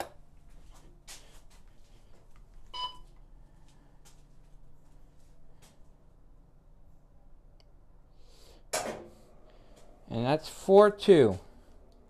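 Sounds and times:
faint in-breath: 0:08.1 - 0:10.0.

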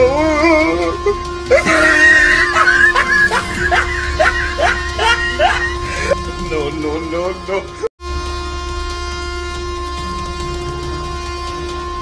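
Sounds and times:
train rumble: 0:00.0 - 0:07.9
train horn: 0:00.7 - 0:12.0.

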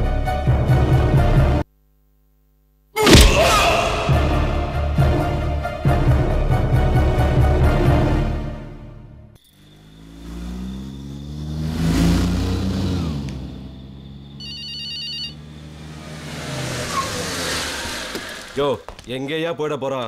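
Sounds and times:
car engine running: 0:09.4 - 0:19.1
mobile phone ringtone: 0:14.4 - 0:15.4.

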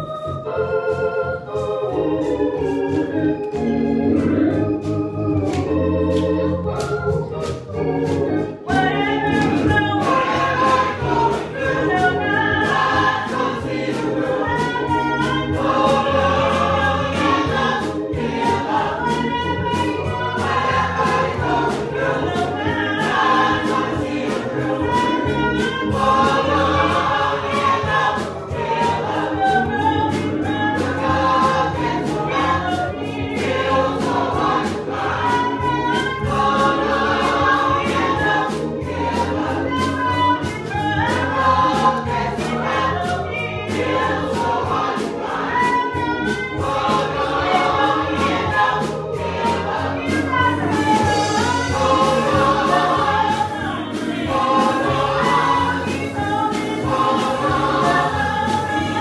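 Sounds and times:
choir singing gospel: 0:00.0 - 0:59.0
steady beat: 0:00.0 - 0:59.0.

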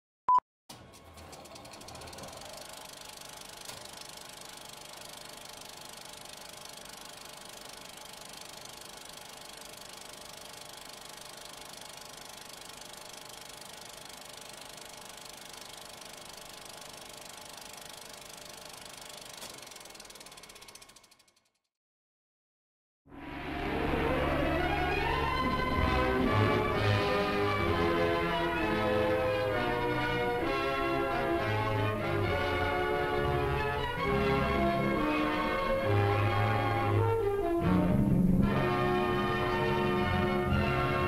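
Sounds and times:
film projector running: 0:00.8 - 0:21.6, 0:25.1 - 0:37.5, 0:38.5 - 0:41.0.

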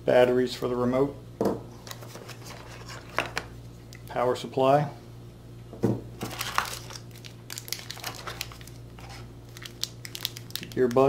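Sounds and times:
plastic packaging crinkling: 0:06.2 - 0:11.0.

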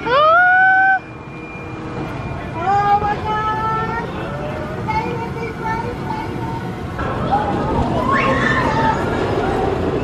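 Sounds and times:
roller coaster rushing on steel track: 0:00.0 - 0:10.0.

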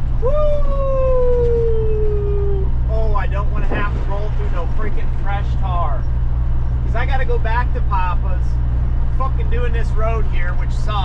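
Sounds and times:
diesel truck engine drone: 0:00.0 - 0:11.0
man hollering woo: 0:00.2 - 0:02.8.

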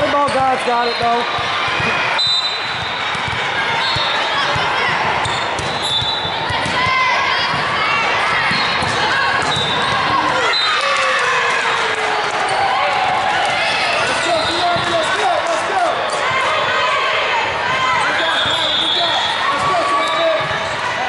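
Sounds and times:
voices calling and shouting: 0:00.0 - 0:21.0
shoes squeaking on hardwood court: 0:05.2 - 0:06.3.

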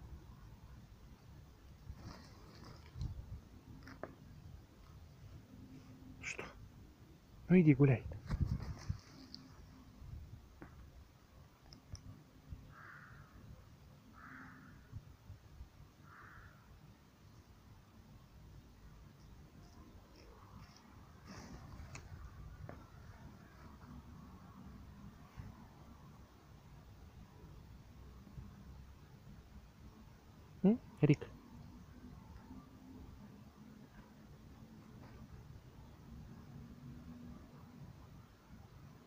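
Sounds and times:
faint low outdoor rumble: 0:00.0 - 0:39.0.

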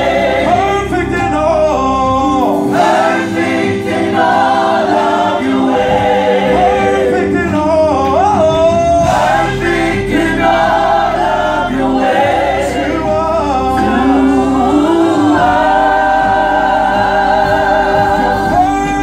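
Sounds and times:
group singing gospel song: 0:00.0 - 0:19.0
held accompanying chords: 0:00.0 - 0:19.0.

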